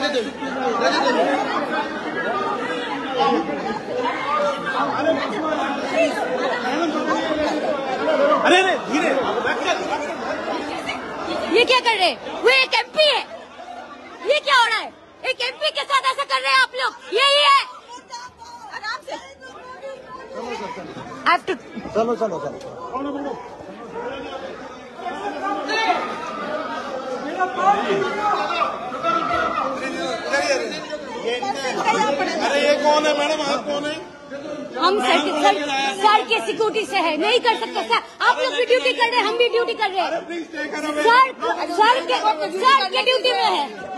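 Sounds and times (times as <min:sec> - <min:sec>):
crowd of overlapping voices: 0:00.0 - 0:43.9
people talking over one another: 0:00.0 - 0:43.9.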